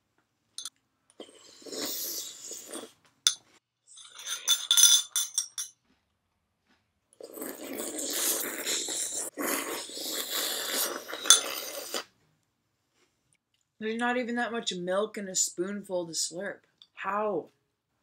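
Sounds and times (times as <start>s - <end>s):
loud slurping from spoon: 1.2s - 3.0s, 7.2s - 12.1s
spoon clinking on ceramic bowl: 4.1s - 5.8s
chewing: 5.7s - 12.1s.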